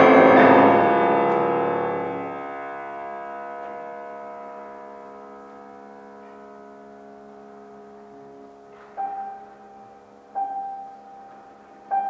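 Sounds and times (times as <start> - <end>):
piano chord ringing: 0.0 - 12.0
piano note struck: 0.0 - 12.0.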